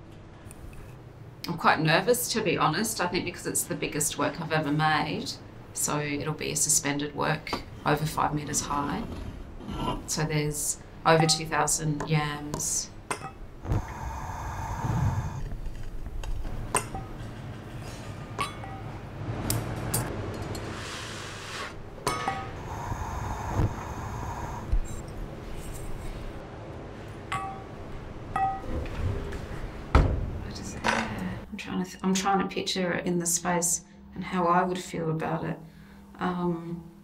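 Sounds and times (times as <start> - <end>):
gas torch hissing: 13.6 - 15.6, 20.7 - 25.1.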